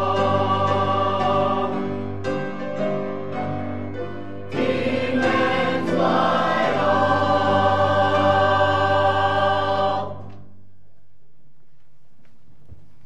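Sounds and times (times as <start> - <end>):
mixed church choir singing: 0.0 - 2.4, 4.4 - 10.4.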